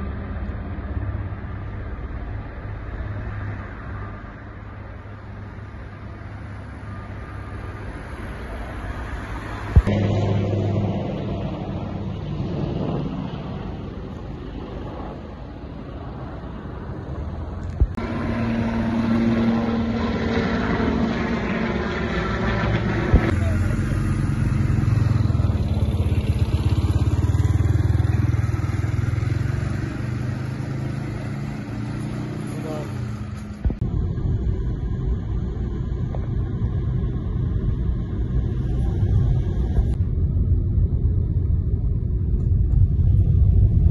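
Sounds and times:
moving car road noise: 0.0 - 43.9.

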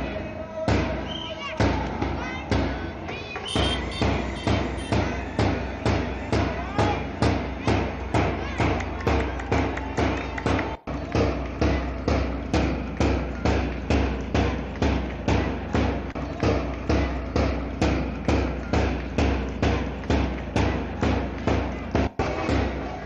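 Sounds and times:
drum beating steady rhythm: 0.0 - 23.0.

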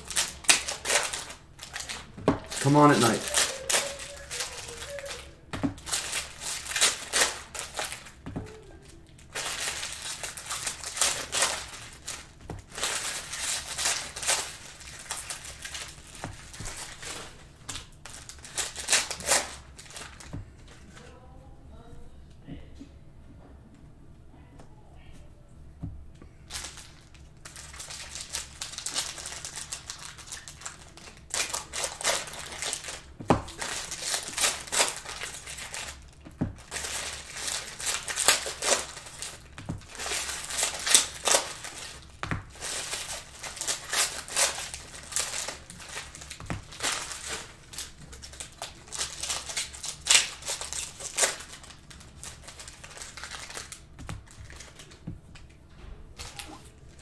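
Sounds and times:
pack torn open crinkling: 0.0 - 20.3, 26.5 - 55.0
plastic wrappers rustling: 0.0 - 21.2, 26.4 - 57.0.

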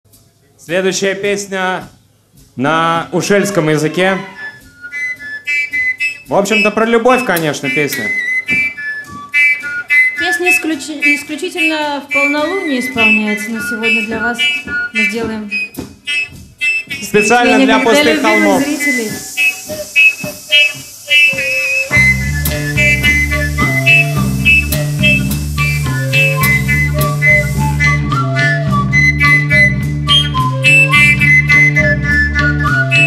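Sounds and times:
drums: 0.1 - 3.6, 11.6 - 33.0
live band playing: 3.9 - 33.0
high whistle-like notes: 4.2 - 33.0
melodic intro notes: 17.2 - 28.3
brief noisy burst: 17.9 - 27.8.

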